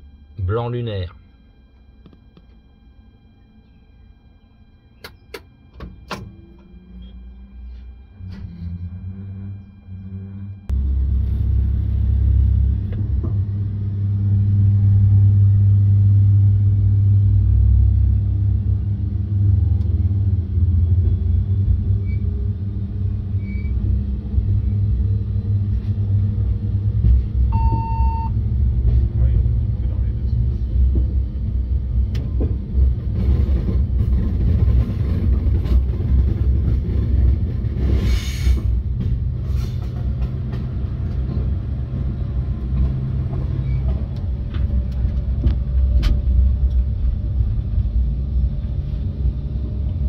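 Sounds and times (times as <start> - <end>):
train rumble: 0.0 - 50.0
short beep: 27.5 - 28.4.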